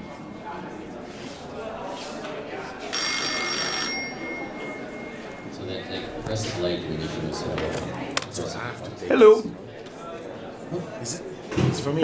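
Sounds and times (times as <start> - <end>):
desk telephone ringing: 2.9 - 5.7.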